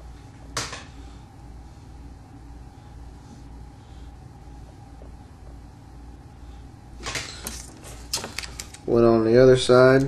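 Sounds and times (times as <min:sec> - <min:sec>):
steady low hum: 0:00.0 - 0:10.0
sharp clicks and rustles: 0:07.1 - 0:08.9.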